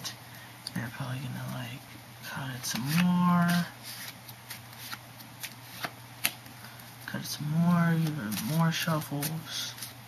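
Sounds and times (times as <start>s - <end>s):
playing cards shuffling: 2.5s - 6.8s, 7.4s - 10.0s.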